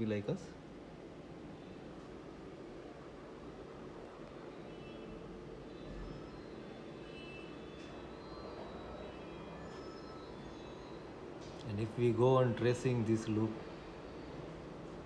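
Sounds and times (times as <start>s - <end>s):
faint high-pitched tones: 1.3s - 15.0s.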